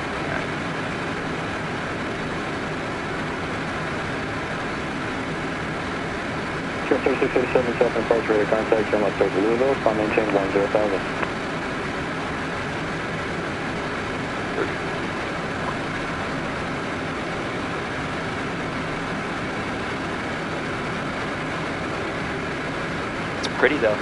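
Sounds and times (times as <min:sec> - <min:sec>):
airflow noise in jet cockpit: 0:00.0 - 0:24.0
jet engine noise: 0:00.0 - 0:24.0.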